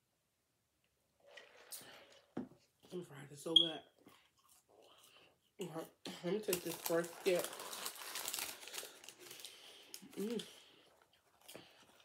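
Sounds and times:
paper wrapper crinkling: 6.4 - 12.0.

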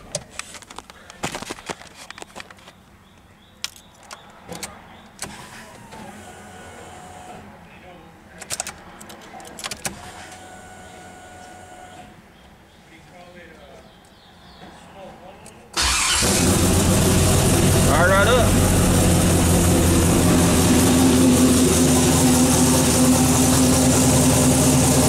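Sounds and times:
ignition key and switch clicks: 8.4 - 10.0.

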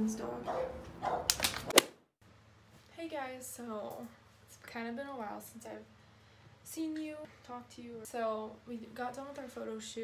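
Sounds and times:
small dog yapping: 0.5 - 1.4.

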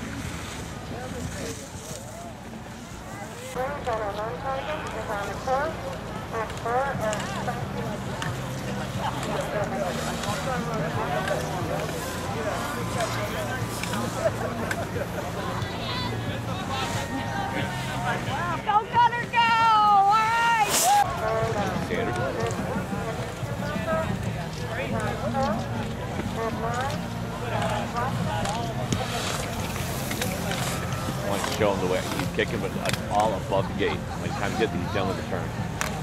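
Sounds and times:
spectators chattering and calling out: 0.0 - 36.0.

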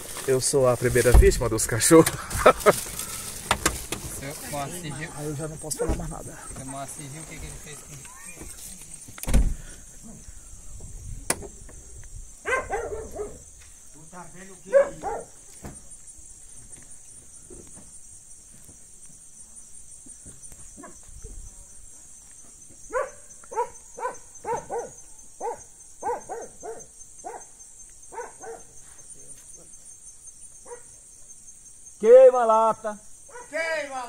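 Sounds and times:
crickets chirping: 0.0 - 34.0
dog barking: 12.4 - 13.5, 14.6 - 15.4, 20.8 - 21.0, 22.9 - 28.8, 30.6 - 31.0, 33.3 - 33.6.

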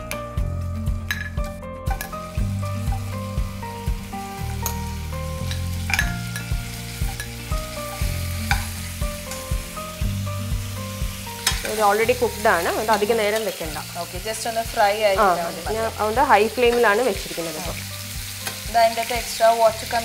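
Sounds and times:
meat sizzling in oil: 0.8 - 20.0
steel spoon clinking on pan: 1.1 - 2.2, 5.4 - 8.8.

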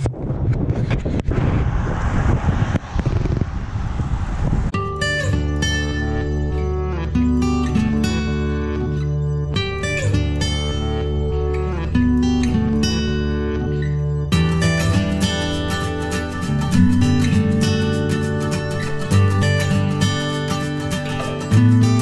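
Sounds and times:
wind noise on microphone: 0.0 - 7.2
acoustic guitar music: 4.8 - 22.0.

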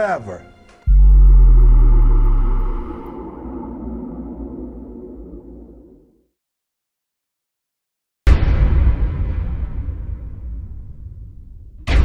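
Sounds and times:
deep bass boom: 0.9 - 6.0
low drone: 0.9 - 6.3.

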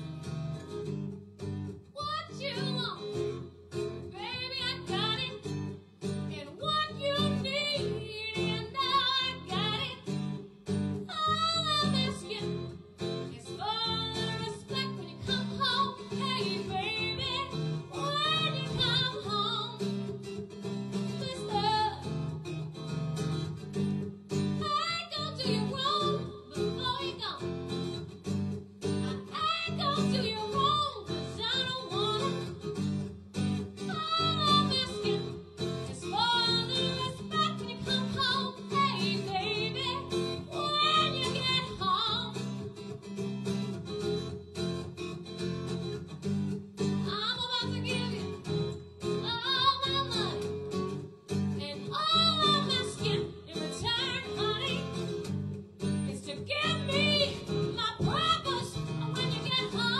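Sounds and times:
acoustic guitar: 0.0 - 59.9
woman singing soul song: 2.0 - 3.4, 4.1 - 5.5, 6.3 - 10.1, 11.0 - 20.0, 21.0 - 22.2, 24.6 - 27.6, 29.0 - 32.6, 33.8 - 42.5, 47.0 - 50.6, 51.6 - 55.2, 56.0 - 59.9.

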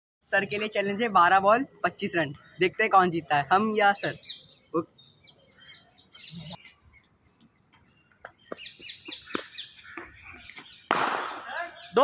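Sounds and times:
songbirds chirping: 0.2 - 12.0.

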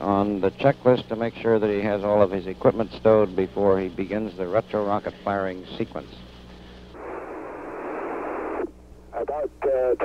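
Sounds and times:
radio hiss: 0.0 - 10.0.

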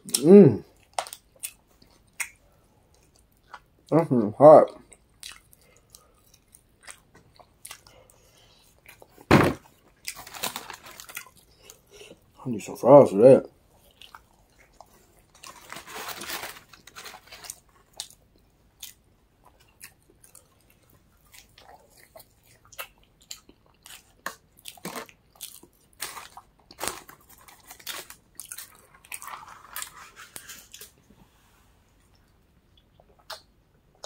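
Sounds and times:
person chewing crunchy food: 4.8 - 12.4, 13.7 - 31.0.

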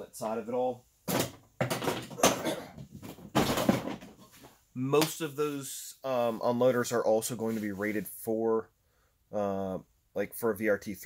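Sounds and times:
objects being moved and set down: 1.0 - 4.6.

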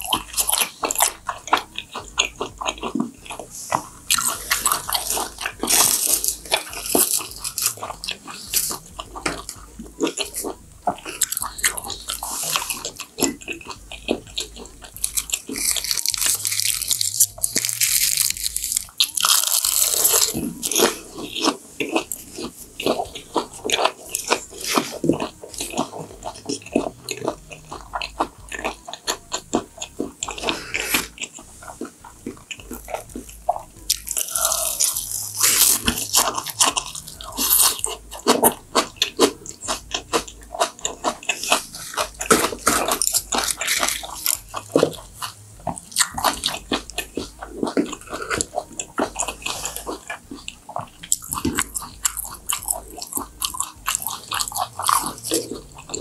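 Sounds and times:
chewing and biting food: 0.0 - 56.0
wet mouth sounds: 0.0 - 56.0.

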